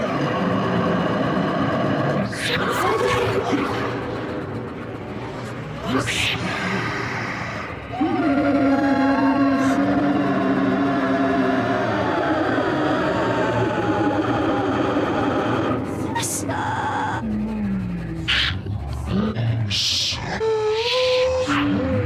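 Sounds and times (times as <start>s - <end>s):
experimental voice: 0.0s - 22.0s.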